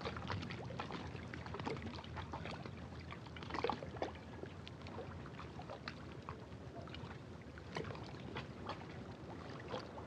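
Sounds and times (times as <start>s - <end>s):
lake water lapping at shore: 7.0s - 10.0s.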